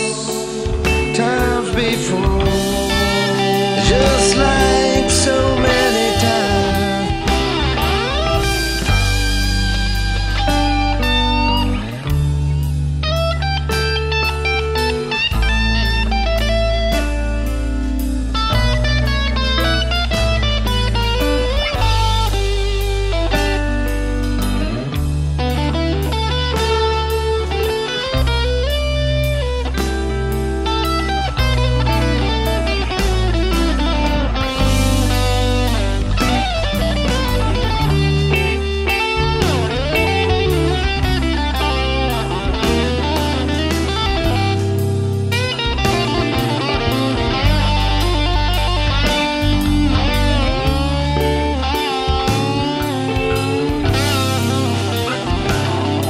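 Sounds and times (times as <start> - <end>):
blues-rock music: 0.0 - 56.0
electric guitar lead lines: 0.0 - 56.0.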